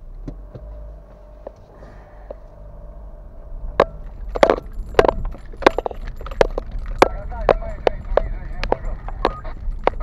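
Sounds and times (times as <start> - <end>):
car engine rumble: 0.0 - 10.0
faint steady tone: 0.0 - 10.0
tires rolling on dirt road: 0.0 - 10.0.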